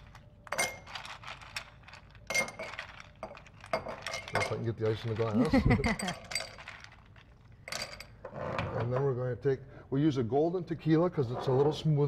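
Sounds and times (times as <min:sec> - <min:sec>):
ice cubes clinking in a glass: 0:00.0 - 0:08.1.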